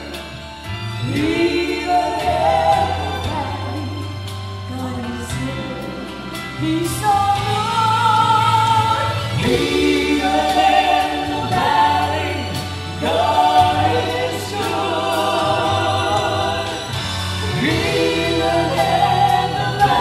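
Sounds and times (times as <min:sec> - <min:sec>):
keyboard accompaniment: 0:00.0 - 0:20.0
vocal trio singing in harmony: 0:00.0 - 0:20.0.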